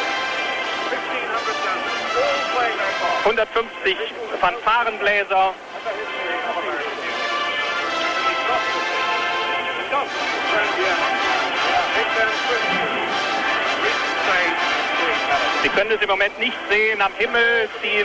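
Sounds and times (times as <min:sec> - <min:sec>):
massed fanfare trumpets: 0:00.0 - 0:18.0.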